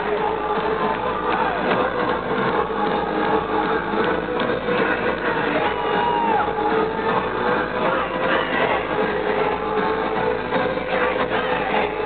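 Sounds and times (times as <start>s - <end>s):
live electro-industrial music: 0.0s - 12.0s.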